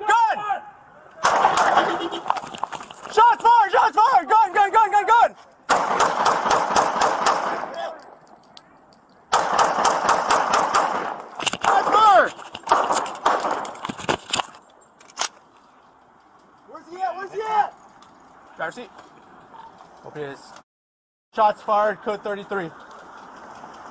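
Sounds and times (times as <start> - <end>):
person shouting: 0.0 - 0.8, 3.1 - 5.4
voices: 0.0 - 5.7, 7.6 - 9.4, 11.5 - 12.7, 15.5 - 20.6, 21.4 - 23.9
rapid gunshots: 1.2 - 2.2, 5.7 - 7.8, 9.3 - 12.1, 12.7 - 13.6.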